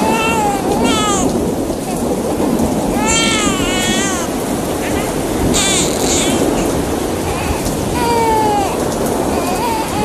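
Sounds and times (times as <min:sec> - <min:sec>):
heavy rain: 0:00.0 - 0:10.0
low rolling thunder: 0:00.0 - 0:10.0.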